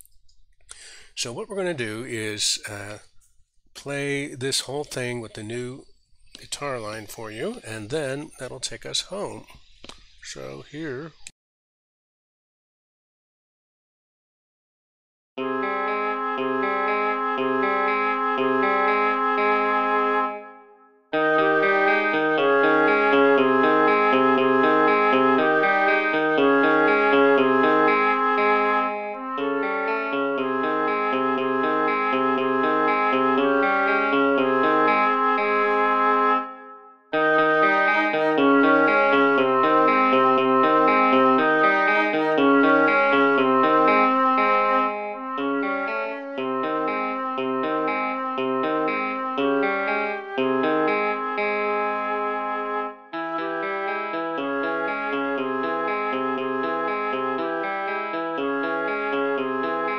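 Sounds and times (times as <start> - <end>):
arpeggiated electric guitar: 15.4 - 59.9
flute and oboe long notes: 15.4 - 59.9.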